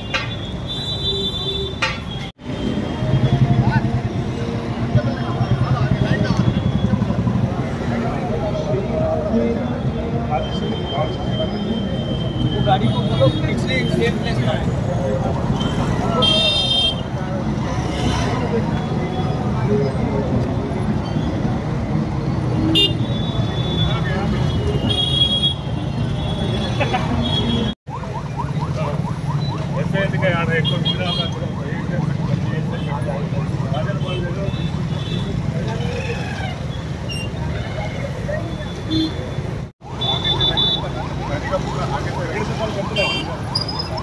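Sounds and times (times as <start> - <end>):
traffic noise: 0.0 - 44.0
people talking: 3.3 - 21.6, 28.0 - 36.5, 40.0 - 43.6.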